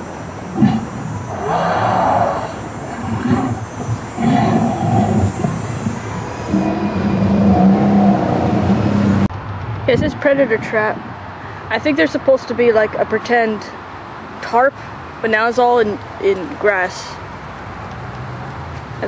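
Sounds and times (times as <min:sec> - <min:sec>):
dinosaur roars through loudspeaker: 0:00.6 - 0:09.2.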